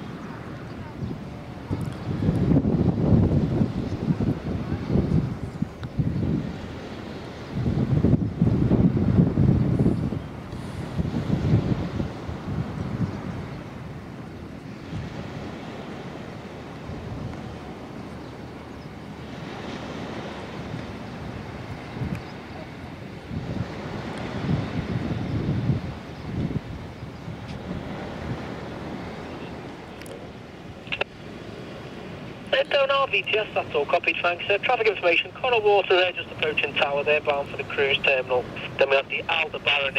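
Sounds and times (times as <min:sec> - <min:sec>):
wind buffeting microphone: 0:00.0 - 0:38.8
steady outdoor hiss: 0:00.0 - 0:39.9.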